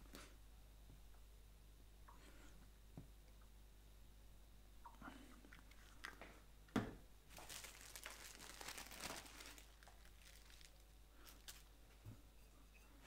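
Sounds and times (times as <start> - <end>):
plastic sheet crinkling: 7.3 - 11.7.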